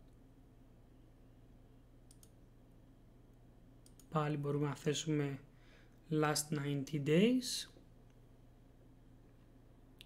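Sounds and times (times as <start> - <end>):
faint low hum: 0.0 - 10.0
computer mouse clicks: 2.0 - 2.4, 3.8 - 4.2.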